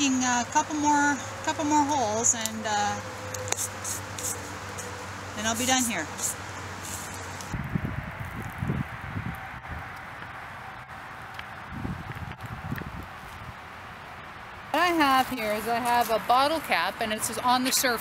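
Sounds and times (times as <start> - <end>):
steady outdoor hiss: 0.0 - 18.0.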